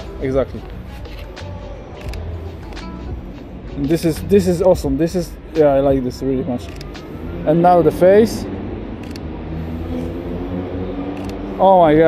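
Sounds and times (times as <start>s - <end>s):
city background rumble: 0.0s - 12.0s.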